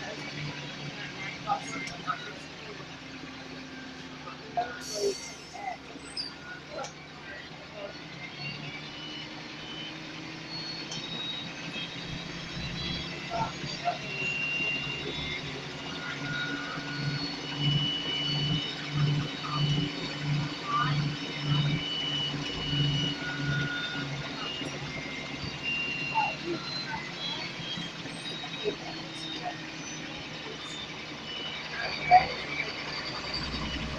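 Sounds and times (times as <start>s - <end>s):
bus diesel engine running: 0.0s - 33.9s.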